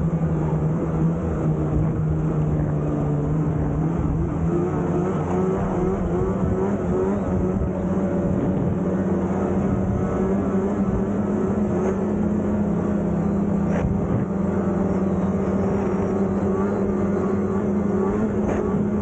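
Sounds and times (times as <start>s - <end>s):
snowmobile engine droning: 0.0s - 19.0s.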